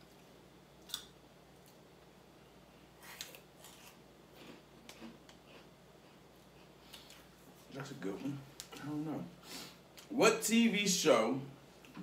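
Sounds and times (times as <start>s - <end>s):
chips crunching while chewed: 3.0s - 5.7s.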